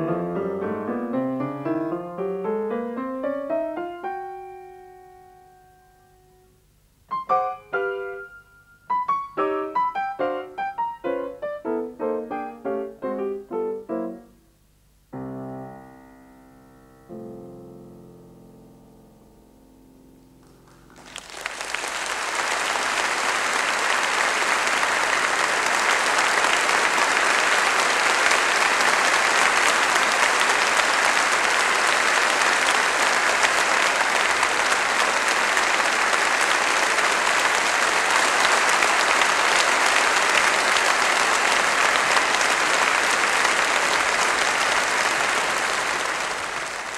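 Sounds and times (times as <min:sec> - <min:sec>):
piano notes: 0:00.0 - 0:21.3
audience applauding: 0:20.4 - 0:46.9.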